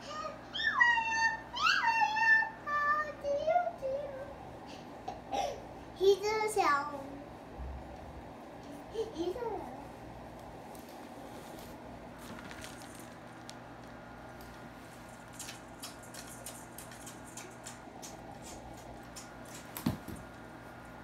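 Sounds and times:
soft kissing smacks: 15.3 - 19.8.

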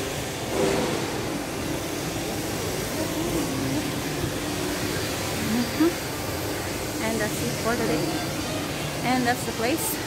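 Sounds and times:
air-handling hum: 0.0 - 10.0
faint murmur of voices: 2.4 - 10.0.

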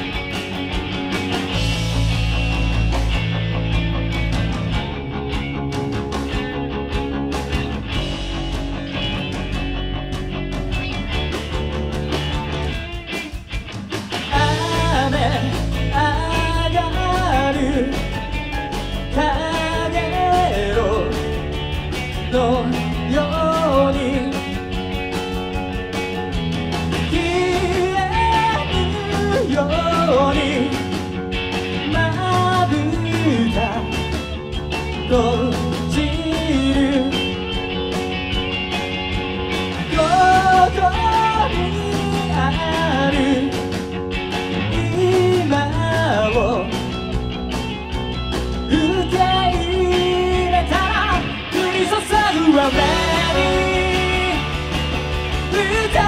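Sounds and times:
rock band playing: 0.0 - 56.0
man singing: 14.3 - 18.4, 19.0 - 21.5, 22.2 - 24.6, 27.0 - 31.1, 31.8 - 34.3, 34.9 - 37.5, 39.8 - 43.8, 44.6 - 46.9, 48.6 - 56.0.

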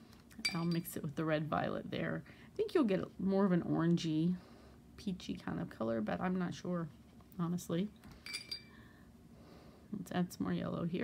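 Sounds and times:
paintbrush clinking on container: 0.4 - 0.9, 8.2 - 8.8.

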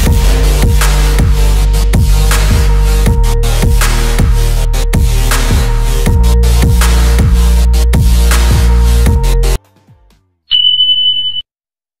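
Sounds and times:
high-pitched electronic beep: 10.5 - 11.5.

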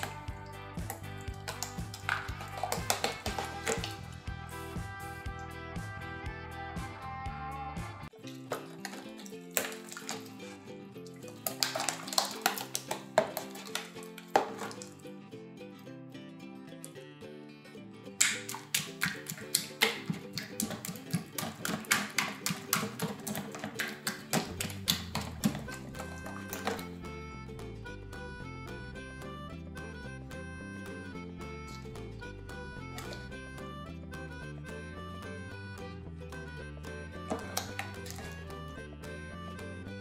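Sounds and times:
hands squishing slime: 0.0 - 4.1, 8.6 - 10.5, 11.2 - 15.0, 18.2 - 26.9, 37.3 - 38.4
background music: 0.0 - 40.0.

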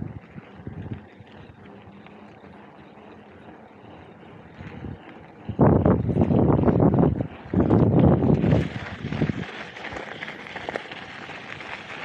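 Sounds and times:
wind buffeting microphone: 0.0 - 1.6, 4.2 - 10.1
bike riding rumble: 0.0 - 12.0.

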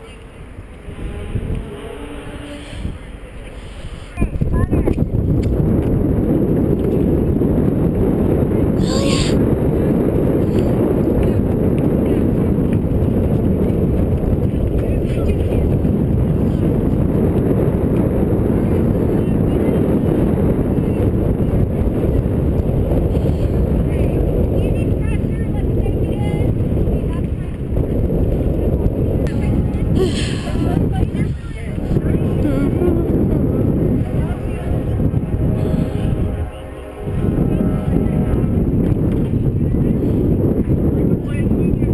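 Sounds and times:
faint voices: 0.0 - 5.1, 8.7 - 16.8, 18.1 - 41.9
wind buffeting microphone: 0.0 - 41.9.

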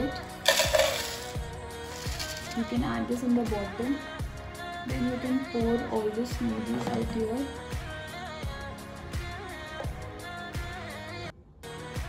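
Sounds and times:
background music with steady beat: 0.0 - 12.0
cereal pouring into plastic jar: 0.4 - 2.6.

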